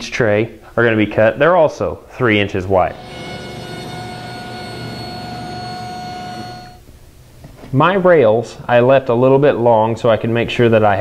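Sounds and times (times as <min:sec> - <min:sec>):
table saw whining: 0:02.8 - 0:06.8.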